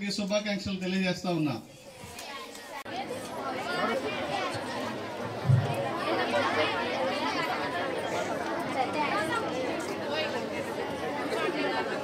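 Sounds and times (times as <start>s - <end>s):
hubbub of chatter: 0.0s - 12.0s.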